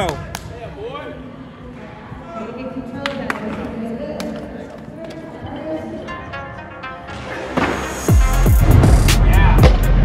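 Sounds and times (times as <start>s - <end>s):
people talking in a large room: 0.0s - 10.0s.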